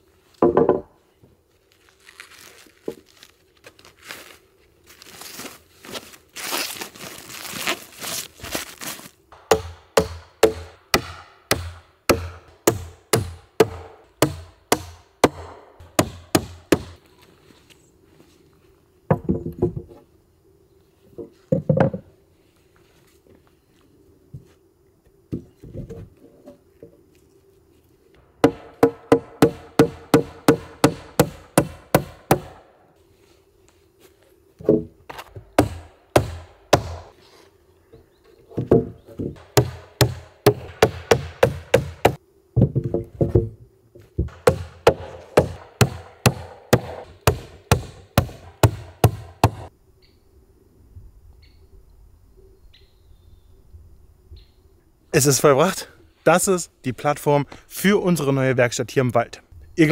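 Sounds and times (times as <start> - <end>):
rustling: 1.5 - 9.2
hammer blows on wooden floorboards: 44.2 - 49.7.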